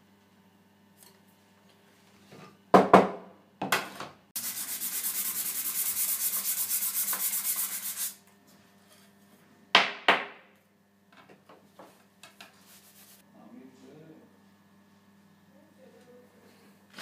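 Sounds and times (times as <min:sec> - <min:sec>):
scrubbing copper with powder: 0:04.4 - 0:08.2, 0:12.6 - 0:13.2.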